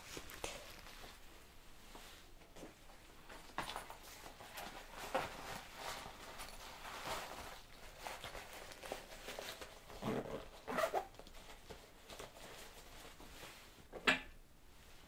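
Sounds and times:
rustling and handling supplies: 0:00.0 - 0:14.1.

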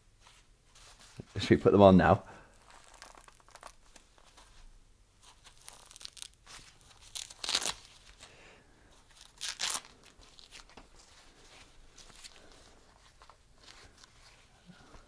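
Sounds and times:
fabric and packaging rustling: 0:00.2 - 0:15.0
hook-and-loop strap tearing: 0:02.5 - 0:04.3, 0:05.4 - 0:08.2, 0:09.2 - 0:10.8.

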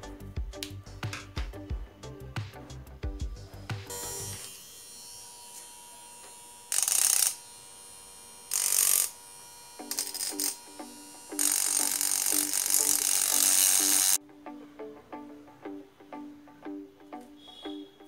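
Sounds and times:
rotary tool grinding steel: 0:03.9 - 0:14.2.

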